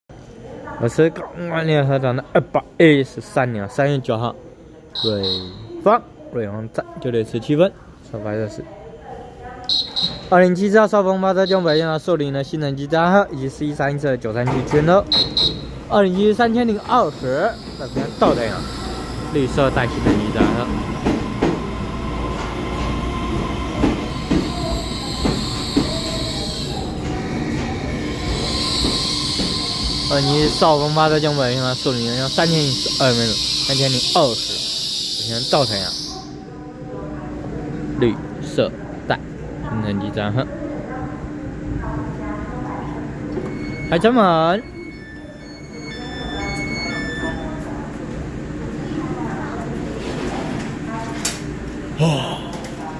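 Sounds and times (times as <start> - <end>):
train equipment humming: 15.0 - 36.6
high-pitched brake squeal: 16.7 - 20.6, 24.0 - 27.0, 28.1 - 36.4, 43.3 - 47.7
thin high tones: 27.8 - 36.4, 43.4 - 47.7.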